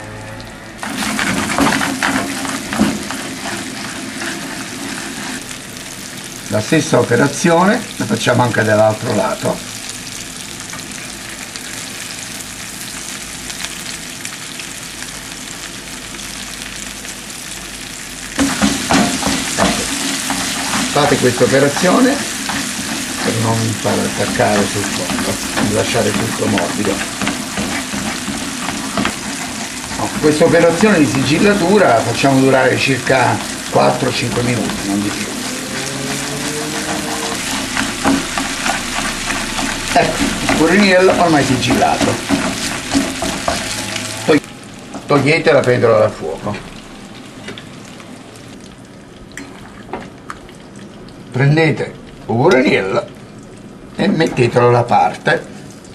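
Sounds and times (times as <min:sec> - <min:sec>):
fish sizzling in a frying pan: 0:00.8 - 0:51.2
frying pan knocks and scrapes: 0:18.4 - 0:20.9.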